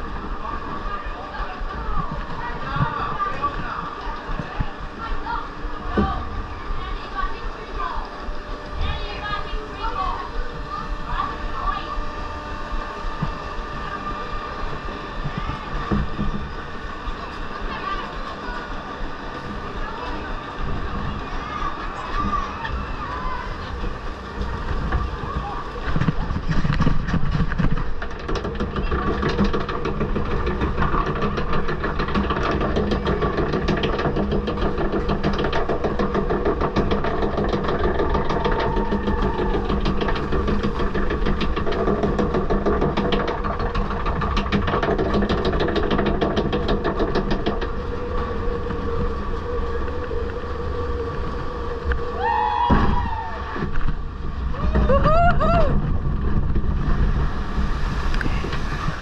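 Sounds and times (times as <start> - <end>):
log flume ride clattering: 0.0 - 59.0
people whooping: 38.3 - 40.0, 52.0 - 53.7, 54.5 - 56.0.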